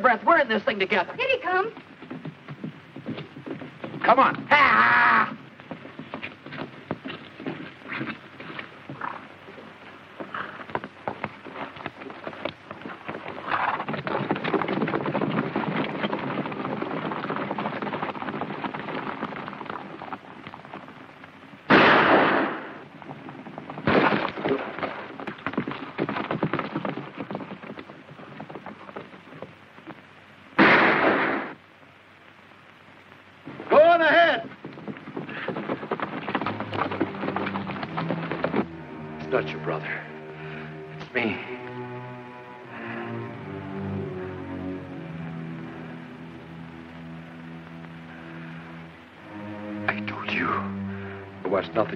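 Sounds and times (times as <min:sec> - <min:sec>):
horses galloping: 0:00.0 - 0:51.9
loud gunshots with echo: 0:21.7 - 0:22.8, 0:30.6 - 0:31.6.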